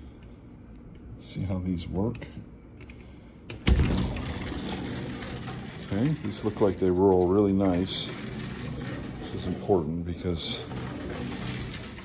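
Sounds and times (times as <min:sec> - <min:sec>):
sliding door rolling on track: 0:03.7 - 0:12.0.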